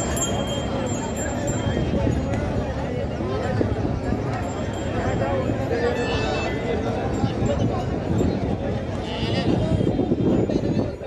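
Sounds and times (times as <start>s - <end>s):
babble of voices: 0.0s - 11.0s.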